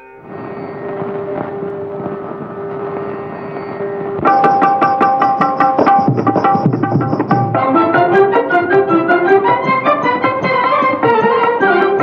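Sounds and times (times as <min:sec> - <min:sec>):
percussion: 0:00.0 - 0:12.0
film song orchestra: 0:07.6 - 0:12.0.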